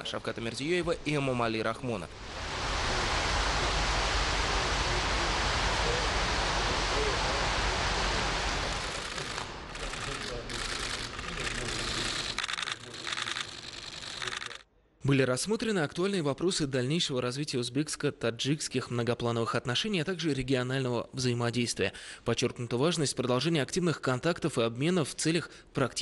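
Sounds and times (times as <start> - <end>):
fountain water rushing: 2.1 - 12.4.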